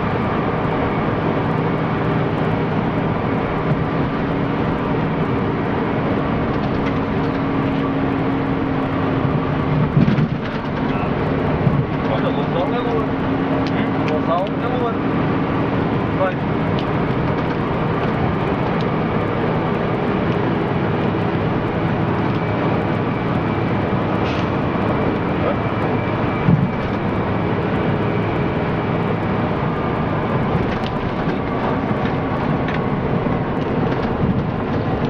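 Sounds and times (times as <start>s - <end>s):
bus engine and road noise: 0.0s - 35.0s.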